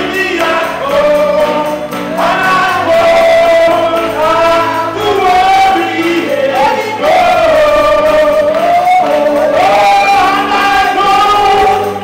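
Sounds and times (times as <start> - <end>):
gospel choir singing: 0.0 - 12.0
lead singer voice: 0.0 - 12.0.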